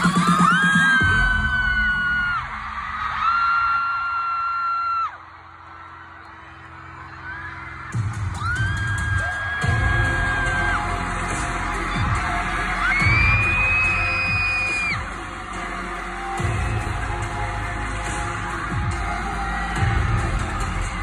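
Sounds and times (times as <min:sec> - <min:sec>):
heavy bass over sound system: 0:00.0 - 0:03.7, 0:06.4 - 0:21.0
fans screaming: 0:00.0 - 0:21.0.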